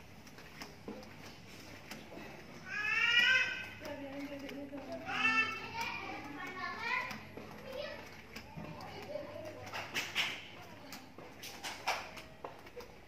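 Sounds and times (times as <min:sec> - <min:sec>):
children calling and chattering: 0:00.7 - 0:13.0.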